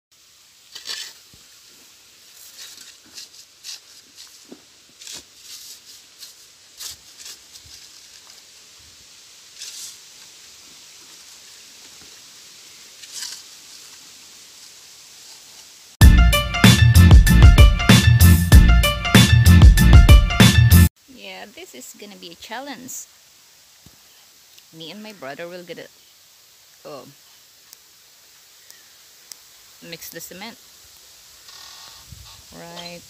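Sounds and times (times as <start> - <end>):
shovels scraping wet cement: 0.6 - 1.5, 2.3 - 8.4, 9.5 - 10.0, 13.0 - 13.5.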